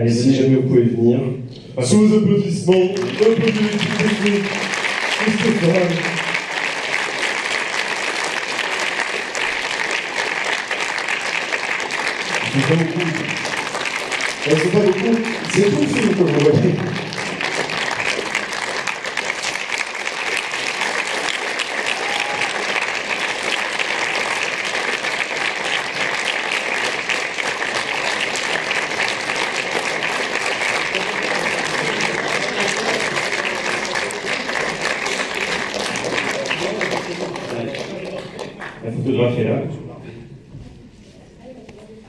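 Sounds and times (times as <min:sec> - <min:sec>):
audience applauding: 0:02.7 - 0:38.9.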